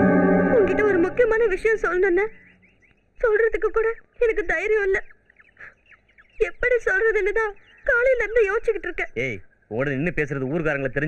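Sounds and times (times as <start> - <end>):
background music: 0.0 - 1.8.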